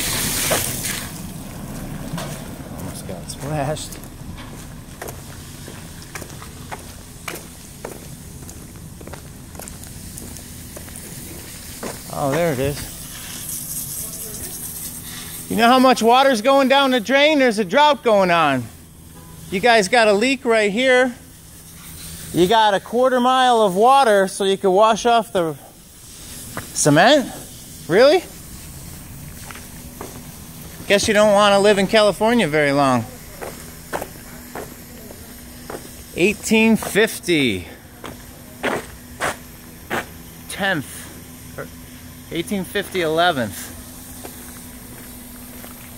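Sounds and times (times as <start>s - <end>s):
footsteps on pavement: 0.3s - 13.0s, 26.2s - 26.8s, 28.3s - 32.4s, 33.3s - 40.3s, 43.6s - 45.9s.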